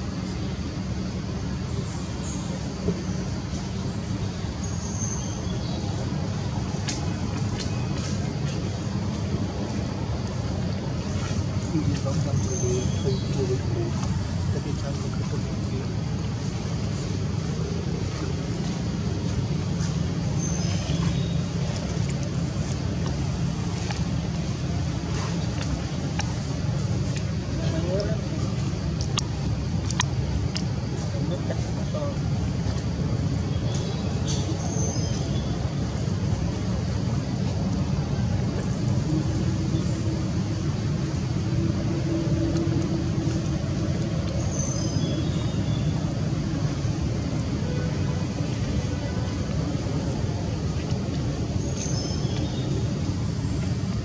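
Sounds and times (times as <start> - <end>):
low background rumble: 0.0 - 54.0.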